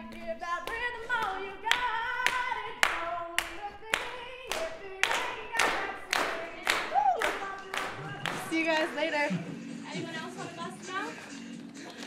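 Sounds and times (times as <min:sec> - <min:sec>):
hand claps: 0:00.0 - 0:09.0
woman singing unaccompanied: 0:00.0 - 0:12.0.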